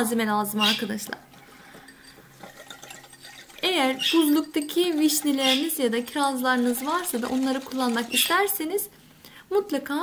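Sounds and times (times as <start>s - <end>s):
whisk swishing liquid: 1.5s - 8.6s
whisk ticking on bowl: 1.9s - 8.6s.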